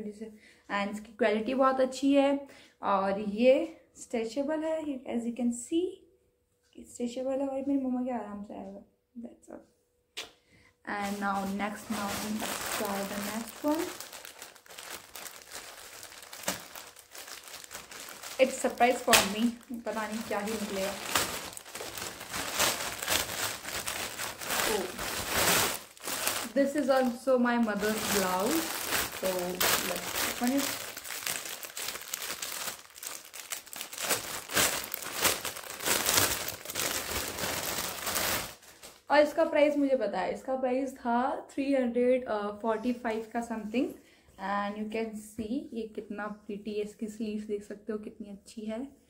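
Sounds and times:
plastic mailer bag crinkling: 11.0 - 39.1.

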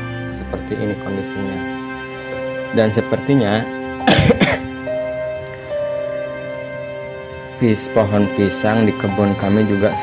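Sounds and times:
soft background music: 0.0 - 10.0
person clearing throat: 4.0 - 4.7.

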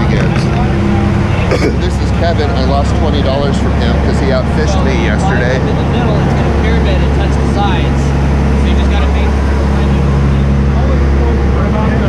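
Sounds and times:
boat engines droning: 0.0 - 12.0.

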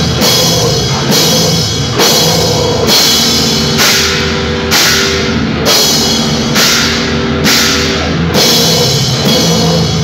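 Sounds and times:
cymbal hits: 0.0 - 10.0
rock band playing live: 0.0 - 10.0.

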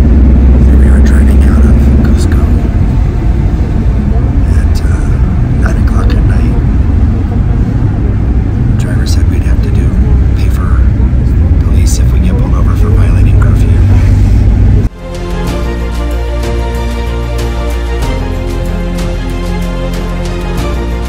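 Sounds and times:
vehicle cabin road and engine rumble: 0.0 - 21.0.

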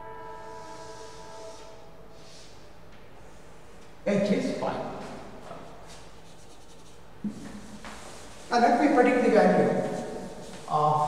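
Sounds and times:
scraping on a chalkboard: 5.5 - 8.5, 9.8 - 11.0.

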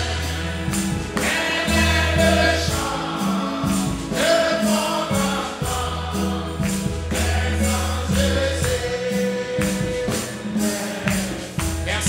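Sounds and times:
choir singing gospel song: 0.0 - 12.0
held bass notes: 0.0 - 12.0
tambourine beat: 0.0 - 12.0.

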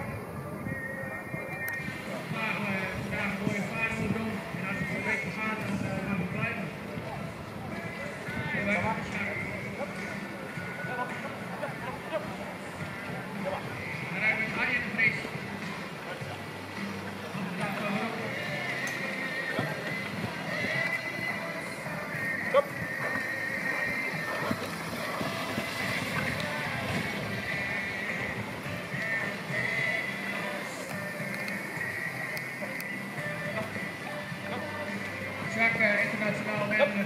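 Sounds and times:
music over loudspeaker: 0.0 - 37.0
horse and carriage passing: 1.3 - 37.0
voice over loudspeaker: 2.2 - 6.8, 13.4 - 15.4, 35.4 - 37.0.

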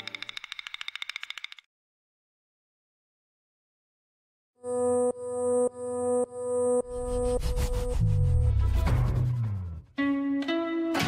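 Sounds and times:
rapid high-pitched ticking: 0.0 - 1.7.

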